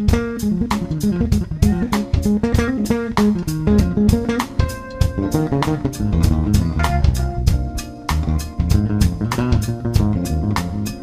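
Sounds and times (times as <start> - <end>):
electric bass line: 0.0 - 11.0
jazz fusion band playing: 0.0 - 11.0
steady drum beat: 0.0 - 11.0.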